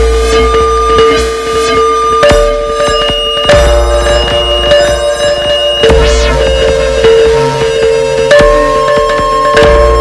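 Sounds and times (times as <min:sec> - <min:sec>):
electronic kalimba tones: 0:00.0 - 0:10.0
deep bass: 0:05.8 - 0:07.8.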